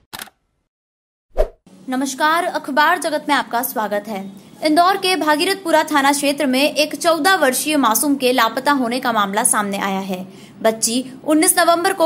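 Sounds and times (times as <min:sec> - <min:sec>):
woman speaking: 0:01.9 - 0:12.0.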